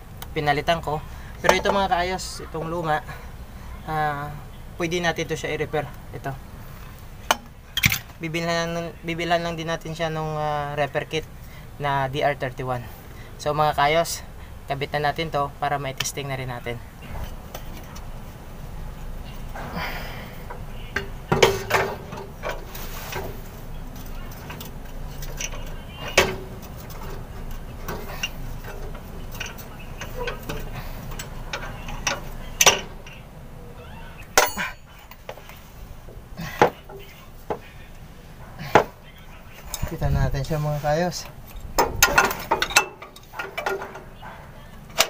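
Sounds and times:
steady low background noise: 0.0 - 45.0.

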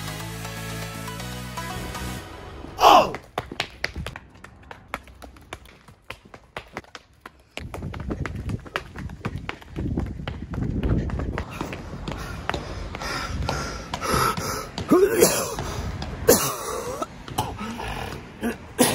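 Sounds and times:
stiletto heels on concrete: 3.0 - 17.7.

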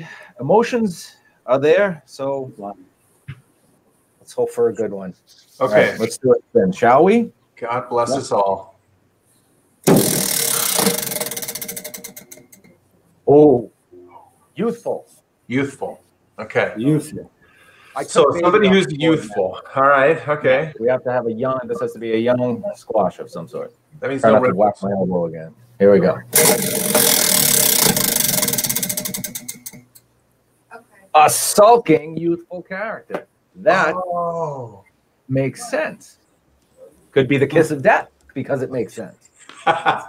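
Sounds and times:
prize wheel flapper clicking: 9.9 - 12.7, 26.3 - 30.0.

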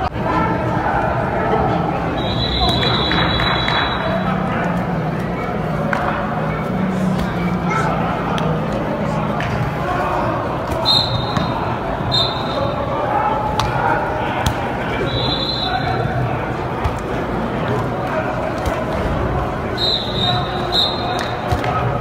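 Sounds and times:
people calling out in echoing hall: 0.0 - 22.0.

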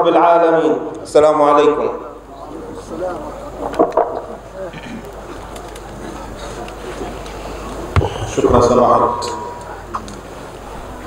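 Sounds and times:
voices murmuring: 2.0 - 11.0.

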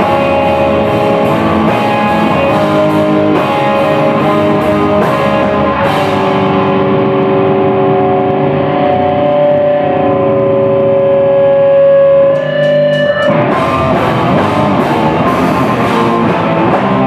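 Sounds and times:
full band playing: 0.0 - 9.6, 12.2 - 17.0
distorted electric guitar chord: 0.0 - 17.0.

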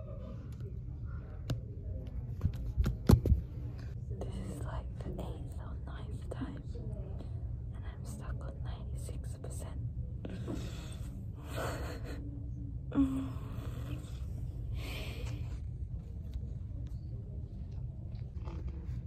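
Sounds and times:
steady low hum: 0.0 - 19.0
woman whispering and muttering: 3.9 - 15.6.

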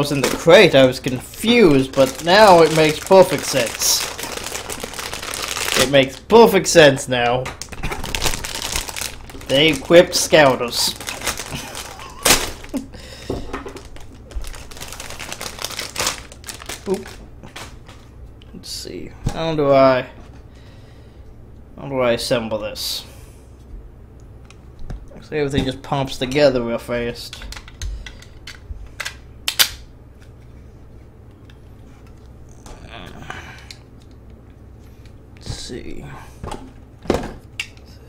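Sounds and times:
plastic packaging crinkling: 0.0 - 6.3, 7.6 - 13.0, 13.7 - 18.1
person laughing: 11.4 - 13.1.

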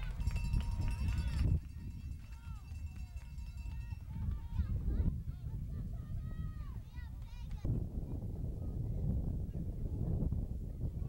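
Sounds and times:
steady low rumble: 4.7 - 11.0.

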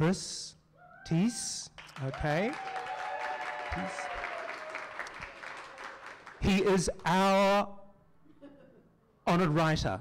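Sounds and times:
audience applauding: 1.8 - 6.9.

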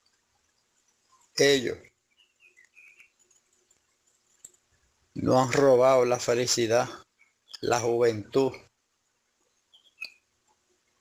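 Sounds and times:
faint high-pitched chirps: 0.0 - 4.9, 6.3 - 8.7, 9.3 - 11.0.

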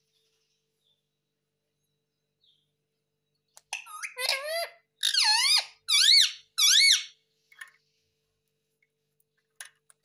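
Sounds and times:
parrot calling: 3.7 - 7.2.

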